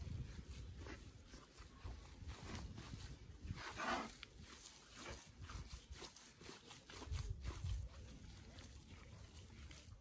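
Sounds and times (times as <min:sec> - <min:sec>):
hands squelching minced meat: 0:00.0 - 0:10.0.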